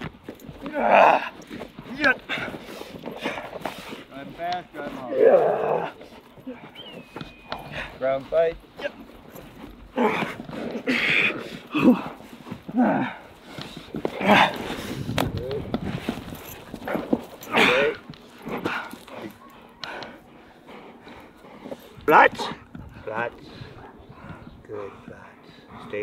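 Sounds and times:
man shouting and grunting: 0.6 - 2.4, 4.9 - 6.0, 12.7 - 13.2, 17.5 - 18.0
dog growling: 4.8 - 6.7.

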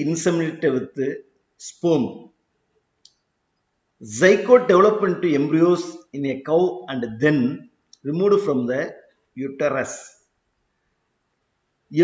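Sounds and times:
person speaking: 0.0 - 2.4, 3.9 - 10.4, 11.8 - 12.0.

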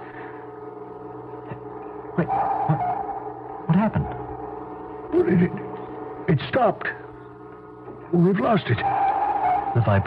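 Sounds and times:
drone of held tones: 0.0 - 10.0.

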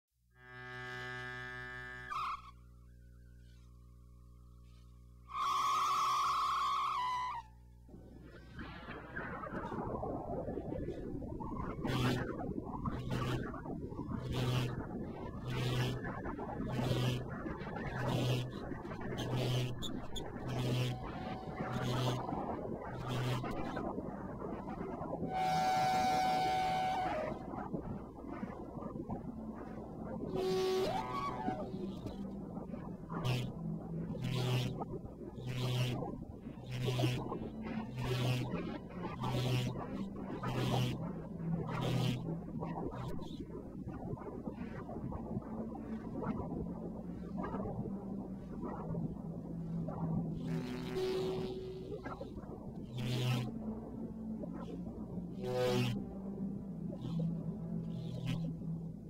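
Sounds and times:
low rumbling synth noise: 0.2 - 59.0
harsh synth tone: 19.2 - 23.4
electronic synthesizer music: 19.2 - 23.7
hissy synth tone: 25.3 - 27.5.

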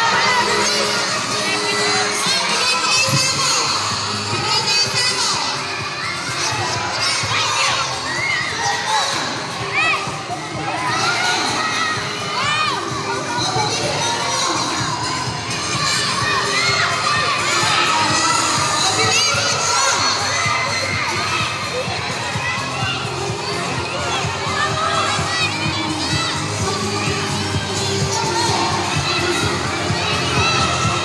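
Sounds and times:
children shouting and cheering: 0.0 - 31.0.

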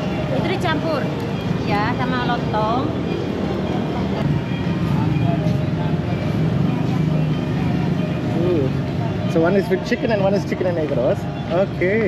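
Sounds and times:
low rumble of traffic: 0.0 - 12.0.

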